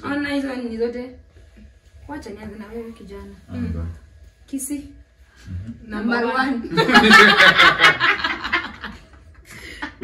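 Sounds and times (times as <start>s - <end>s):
group of people laughing: 6.7s - 10.0s.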